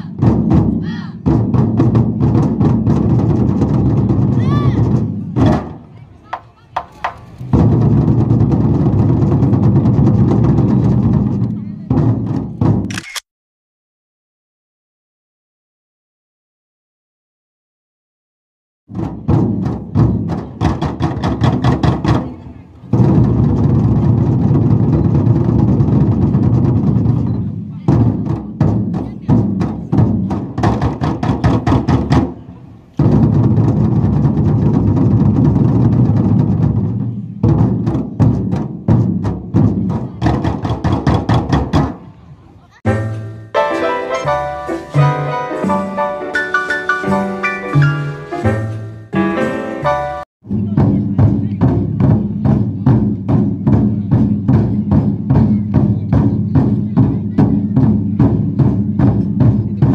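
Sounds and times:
barrel drums rolling: 0.1s - 12.9s, 18.9s - 59.9s
sharp drum stroke: 42.8s - 59.9s.

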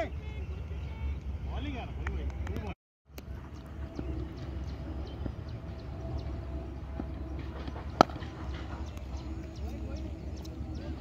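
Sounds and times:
outdoor background: 0.0s - 11.0s
cricket bat hitting ball: 8.0s - 8.7s.

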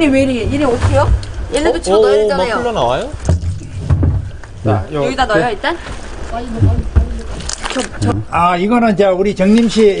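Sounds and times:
low handling knocks: 3.2s - 4.9s, 6.5s - 7.3s.

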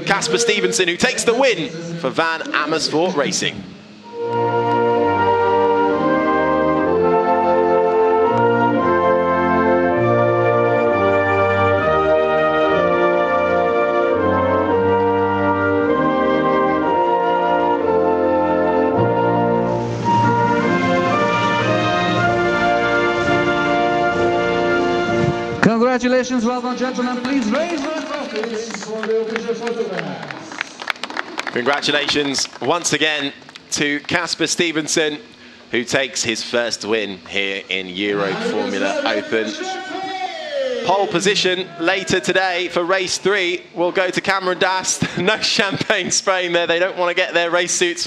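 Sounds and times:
anthem played by brass and organ: 0.0s - 25.7s.

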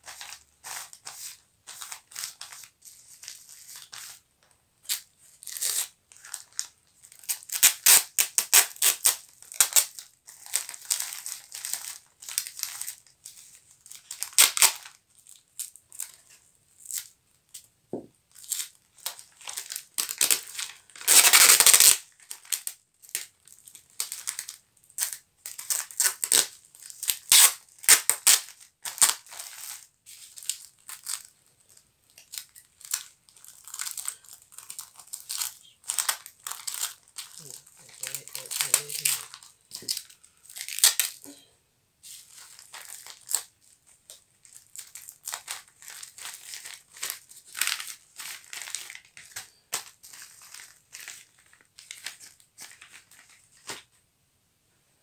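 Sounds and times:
bubble wrap crinkling: 0.0s - 41.4s, 42.0s - 54.0s
packing tape ripping off roll: 4.8s - 13.0s, 13.9s - 15.0s, 18.4s - 23.3s, 24.0s - 31.3s, 32.2s - 41.2s.

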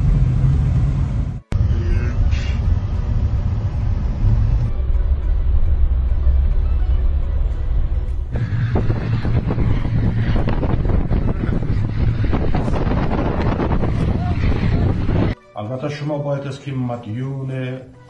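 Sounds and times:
wind buffeting microphone: 8.3s - 15.4s.

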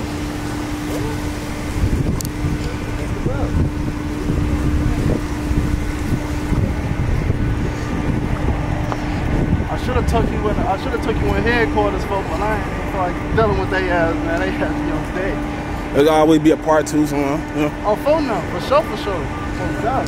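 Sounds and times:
steady hum: 0.0s - 20.0s
wind buffeting microphone: 0.0s - 20.0s.

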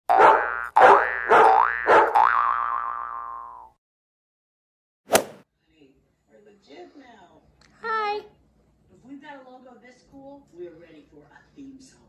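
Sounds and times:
cartoon boing twang: 0.1s - 3.7s.

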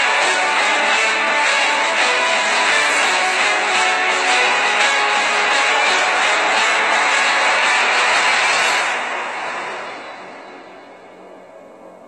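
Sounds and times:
loud steady rushing noise: 0.0s - 12.0s.

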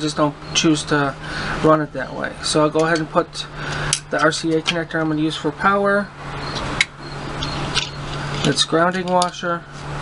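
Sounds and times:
small metal parts handling: 2.8s - 5.2s.

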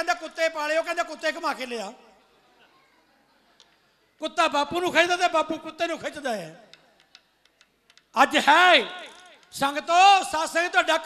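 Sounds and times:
man declaiming into a microphone: 0.0s - 2.2s, 4.2s - 6.7s, 8.1s - 11.0s.

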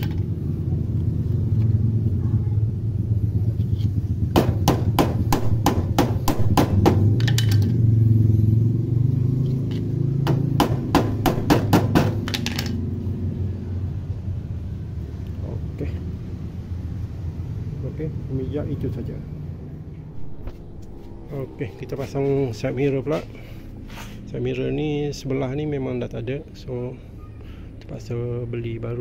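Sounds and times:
steady low hum: 9.9s - 29.0s.

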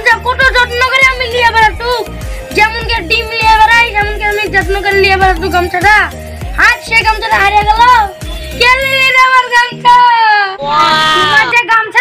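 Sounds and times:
background music track: 0.0s - 12.0s.

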